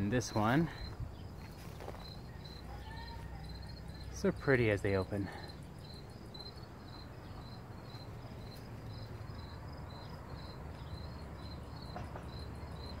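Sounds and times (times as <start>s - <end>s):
crickets chirping: 0.0s - 13.0s.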